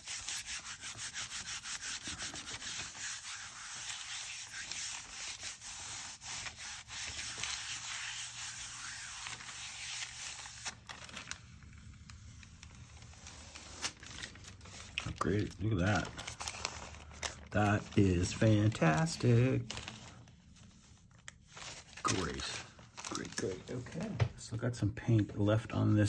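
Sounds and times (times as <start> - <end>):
palm rubbing paper: 0.0 - 24.1.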